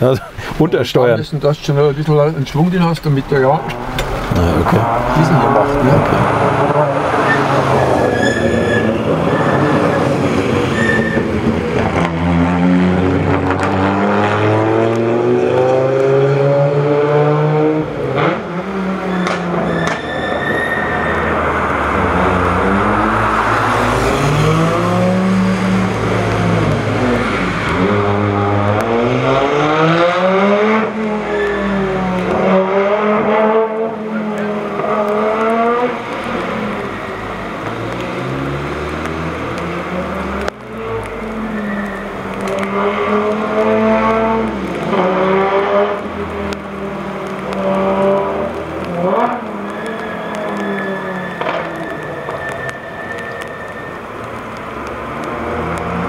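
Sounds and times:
rally car engine revving: 0:01.7 - 0:53.5.

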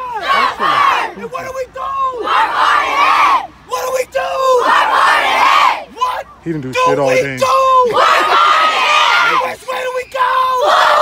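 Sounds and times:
team shouting chant: 0:00.0 - 0:11.0.

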